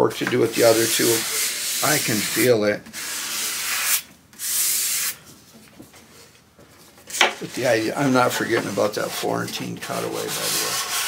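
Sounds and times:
sanding block rasping on wood: 0:00.5 - 0:05.1, 0:08.1 - 0:11.0.

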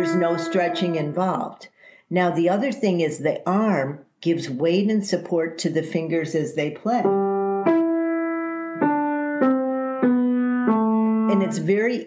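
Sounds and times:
piano single notes: 0:00.0 - 0:01.3, 0:07.0 - 0:12.0.

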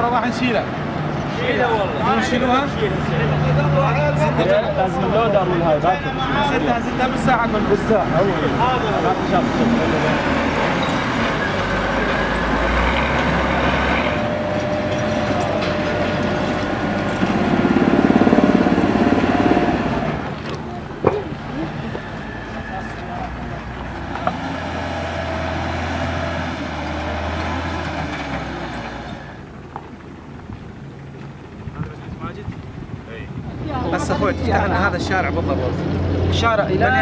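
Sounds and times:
diesel engine rumbling: 0:00.0 - 0:37.0.

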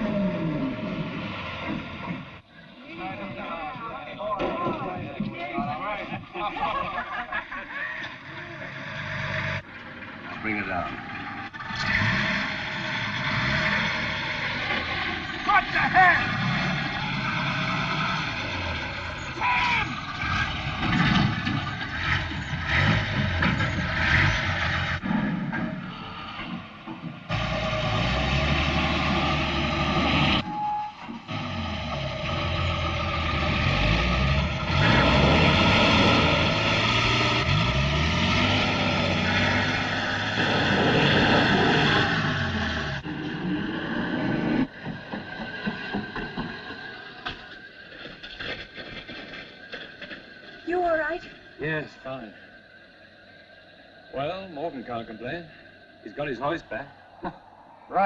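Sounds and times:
truck engine revving: 0:00.0 - 0:52.6.

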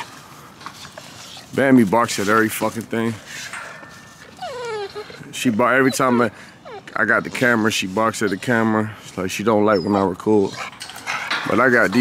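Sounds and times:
dog whining: 0:00.8 - 0:01.6, 0:04.0 - 0:12.0.

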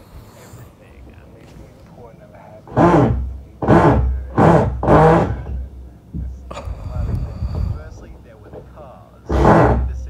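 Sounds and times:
car engine revving: 0:02.7 - 0:08.7, 0:09.3 - 0:10.0
car engine idling rumble: 0:03.2 - 0:09.0.

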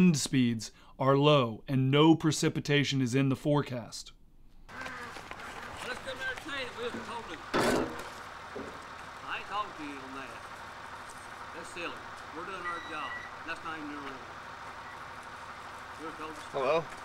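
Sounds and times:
distant voices talking: 0:04.7 - 0:17.0
tractor engine idling: 0:04.7 - 0:17.0
loud bump: 0:07.0 - 0:08.8.

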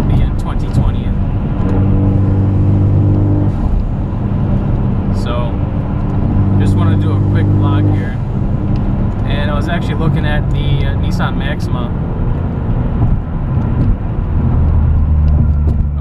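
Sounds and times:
car engine drone inside cabin: 0:00.0 - 0:16.0
tyre and road noise: 0:00.0 - 0:16.0.

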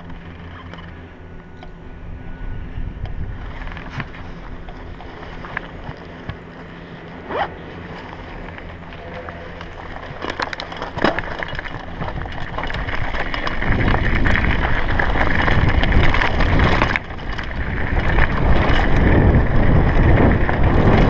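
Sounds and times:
wind buffeting microphone: 0:01.0 - 0:21.0.

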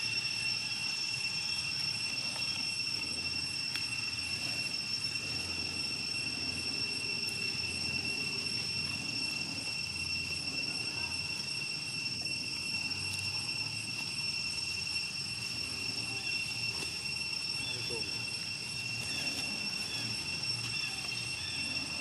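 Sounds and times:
high-pitched insect drone: 0:00.0 - 0:22.0.

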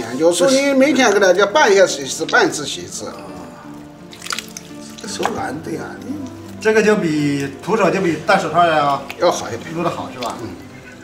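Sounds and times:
background music: 0:00.0 - 0:11.0
wet squelching of hands kneading: 0:00.0 - 0:11.0.

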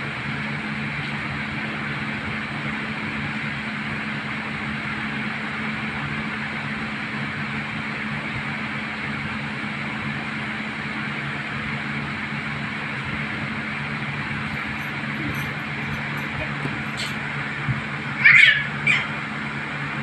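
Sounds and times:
machine whirring with low hum: 0:00.0 - 0:20.0.

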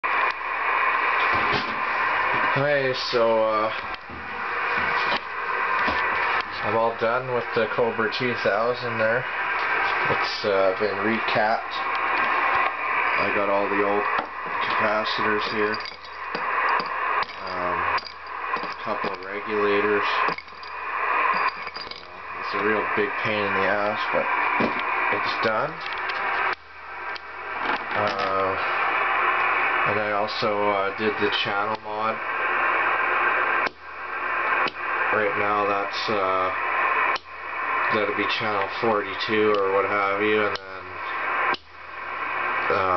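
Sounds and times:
radio static hiss: 0:00.0 - 0:42.9
radio click: 0:00.1 - 0:00.4, 0:03.6 - 0:06.8, 0:09.4 - 0:22.4, 0:23.5 - 0:30.1, 0:31.5 - 0:35.1, 0:36.5 - 0:37.8, 0:39.4 - 0:41.7.

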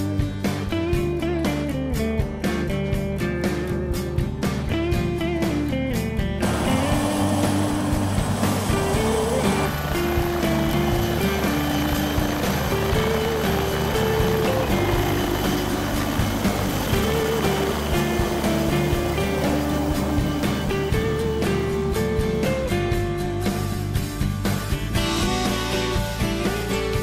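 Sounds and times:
background music with melody: 0:00.0 - 0:27.0
helicopter engine and rotor: 0:06.4 - 0:22.7.

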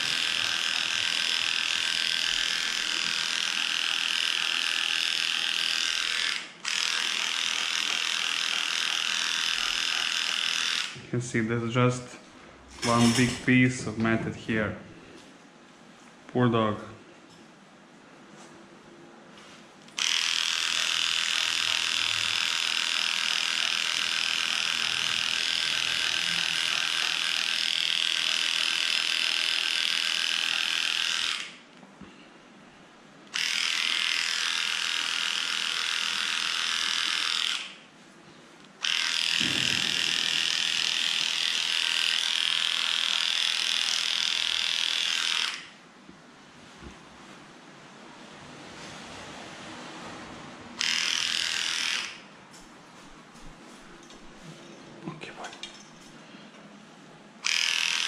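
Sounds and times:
electric clipper buzzing: 0:00.0 - 0:11.0, 0:19.9 - 0:31.7, 0:33.3 - 0:37.8, 0:38.8 - 0:45.8, 0:50.8 - 0:52.2, 0:57.4 - 0:58.0.

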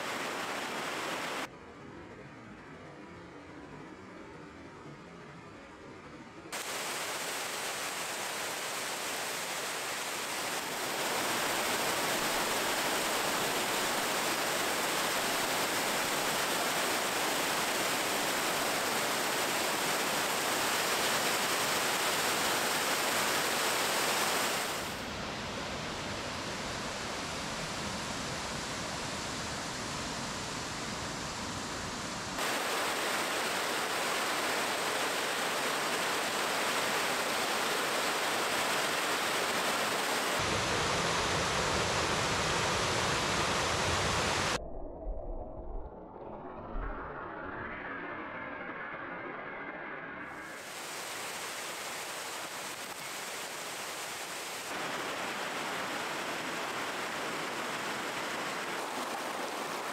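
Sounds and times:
waterfall rushing: 0:00.0 - 0:01.5, 0:06.6 - 0:25.0, 0:32.4 - 0:44.6, 0:50.5 - 0:59.9.

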